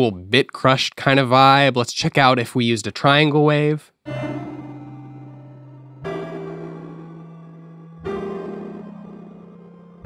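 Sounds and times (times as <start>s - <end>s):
sustained synth chord: 4.1s - 10.0s.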